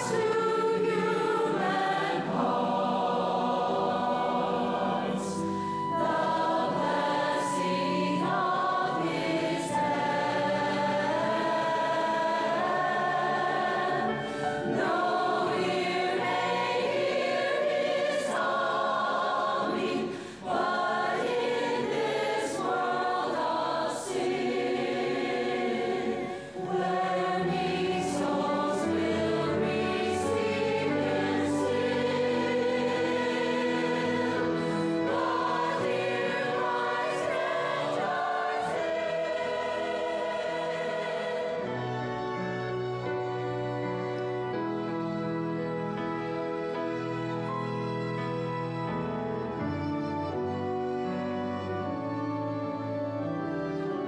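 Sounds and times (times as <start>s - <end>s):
choir singing in harmony: 0.0s - 54.0s.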